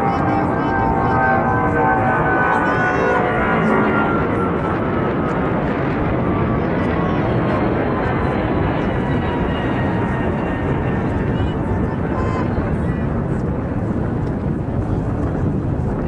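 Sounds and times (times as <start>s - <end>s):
aircraft roar overhead: 0.0s - 16.0s
faint voices: 0.0s - 16.0s.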